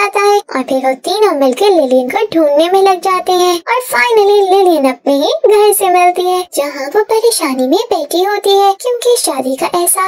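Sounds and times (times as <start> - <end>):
high-pitched voice narrating: 0.0 - 10.0.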